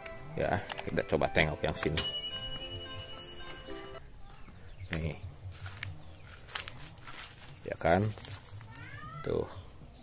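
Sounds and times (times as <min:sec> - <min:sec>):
bright bell chime: 0:00.2 - 0:04.5.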